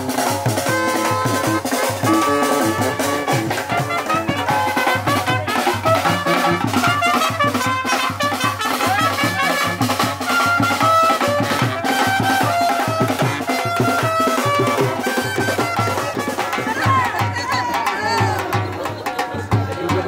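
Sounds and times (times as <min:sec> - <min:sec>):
brass instruments playing: 0:00.0 - 0:16.5
steady drum beat: 0:00.0 - 0:20.0.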